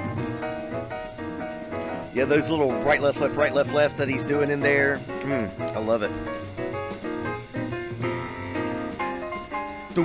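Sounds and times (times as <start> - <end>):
bass: 0.0 - 10.0
drums: 0.0 - 10.0
jazz piano soloing in chords: 0.0 - 10.0.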